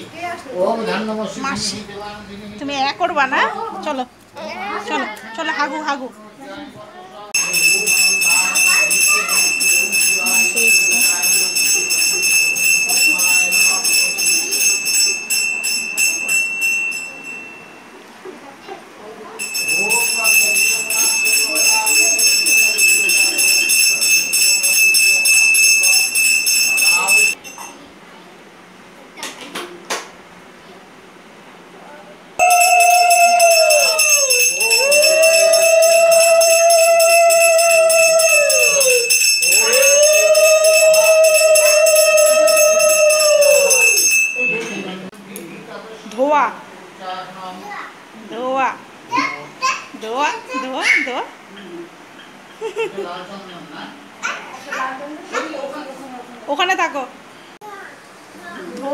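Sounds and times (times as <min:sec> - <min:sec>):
hand bell rung rapidly: 0:07.4 - 0:17.8, 0:19.4 - 0:27.7, 0:32.4 - 0:45.0.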